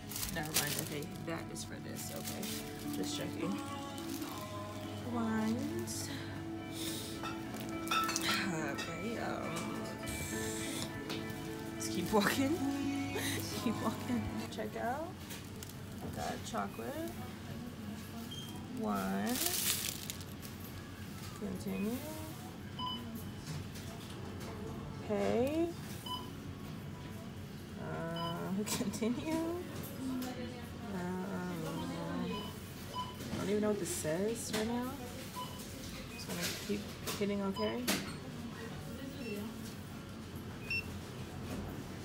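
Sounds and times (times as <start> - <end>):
background voices: 0.0 - 15.3.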